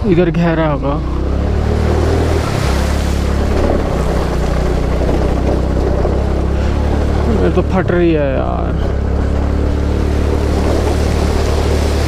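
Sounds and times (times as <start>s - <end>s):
scooter engine running: 0.0s - 12.0s.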